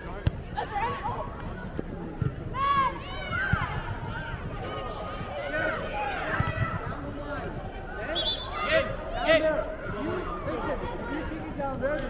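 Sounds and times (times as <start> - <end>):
players shouting calls: 2.5 - 11.6.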